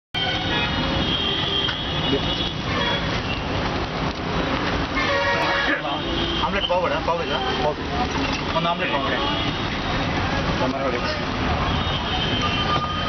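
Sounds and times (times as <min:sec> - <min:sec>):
busy street traffic: 0:00.1 - 0:13.0
vehicle horns tooting: 0:00.2 - 0:03.6, 0:04.9 - 0:10.1, 0:10.9 - 0:13.0.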